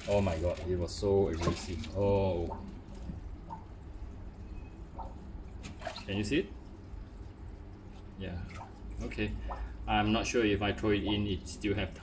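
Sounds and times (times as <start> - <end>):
aquarium pump humming: 0.0 - 12.0.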